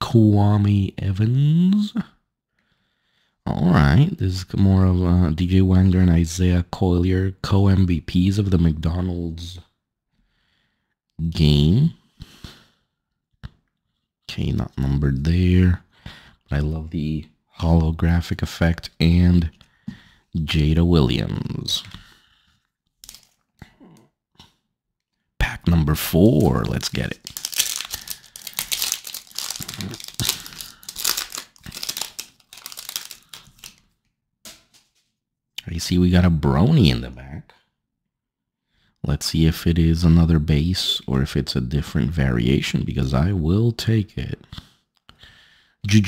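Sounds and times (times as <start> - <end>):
card rustling in the hand: 23.0 - 23.5, 25.9 - 35.2
foil wrapper tearing and crinkling: 23.0 - 23.5, 26.4 - 33.8.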